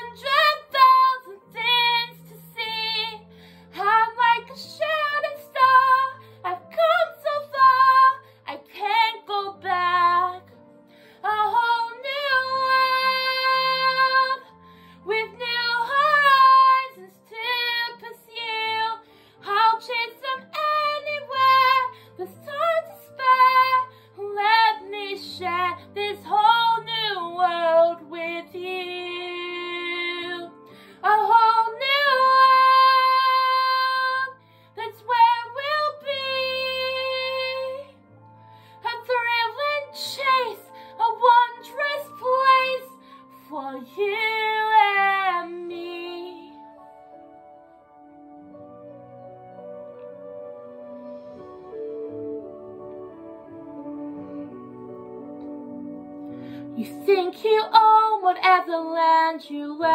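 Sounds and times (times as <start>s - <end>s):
woman singing: 0.0s - 10.6s, 11.2s - 38.0s, 38.8s - 46.8s, 56.6s - 59.9s
faint backing track: 0.0s - 59.9s
sustained low accompaniment: 46.8s - 56.5s.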